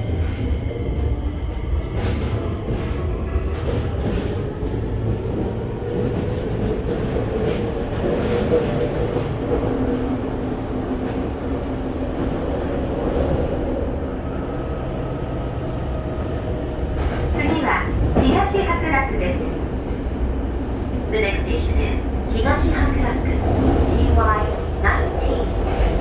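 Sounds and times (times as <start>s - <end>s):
train wheels rumbling on rail: 0.0s - 26.0s
on-board announcement: 17.4s - 19.7s, 21.0s - 25.6s.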